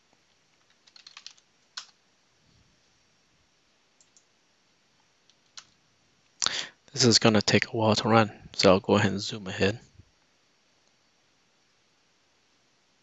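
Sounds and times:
computer mouse and keyboard clicks: 0.5s - 2.0s, 4.0s - 4.3s, 5.3s - 5.8s.

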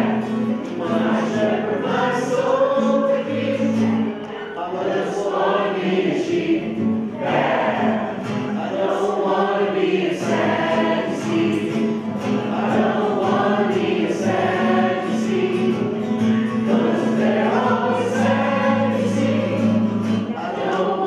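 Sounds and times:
acoustic guitar: 0.0s - 21.0s
group singing a worship song: 0.0s - 21.0s.

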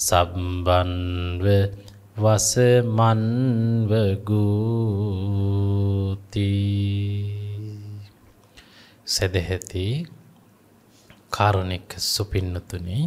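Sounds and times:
man chanting solo: 0.0s - 8.1s.

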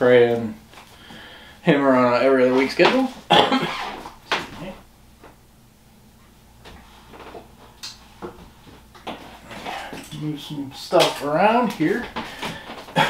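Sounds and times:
man coughing: 3.3s - 3.8s.

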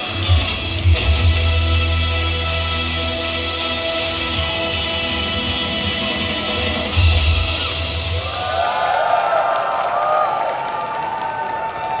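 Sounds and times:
audience cheering and whooping: 7.8s - 12.0s.

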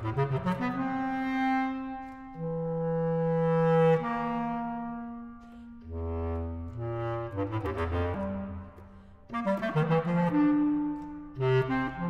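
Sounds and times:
bass clarinet playing: 0.0s - 12.0s.

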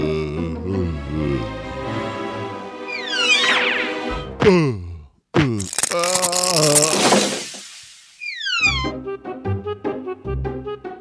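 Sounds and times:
cartoon whoosh: 2.9s - 4.0s.

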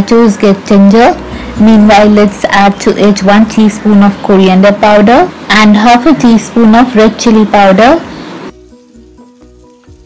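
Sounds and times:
food sizzling in a pan: 5.2s - 10.0s
soft music of held notes: 8.5s - 10.0s.

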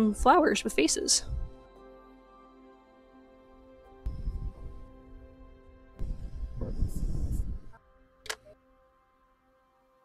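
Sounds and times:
soft background music: 0.0s - 10.0s
sharp click: 8.2s - 8.5s.

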